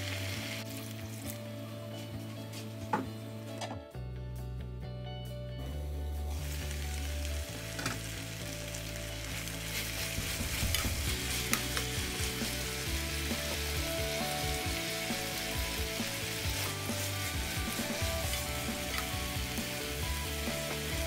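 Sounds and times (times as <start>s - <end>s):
meat sizzling in a pan: 0.0s - 1.4s, 6.3s - 21.0s.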